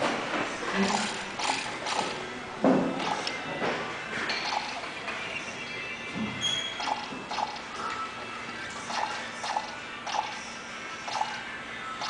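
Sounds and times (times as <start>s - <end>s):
plastic gears clicking and rattling: 0.8s - 2.2s.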